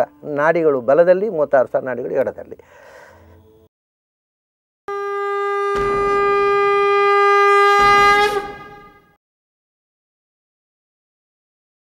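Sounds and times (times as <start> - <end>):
conch shell blown: 4.9 - 9.2.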